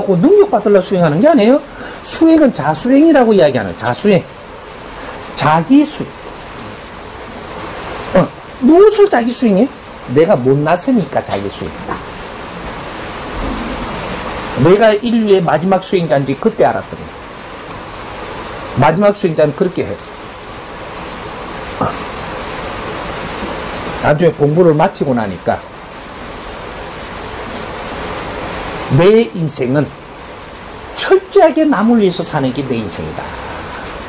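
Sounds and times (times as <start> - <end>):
water rushing: 0.0 - 34.0
low rumble: 12.8 - 14.7.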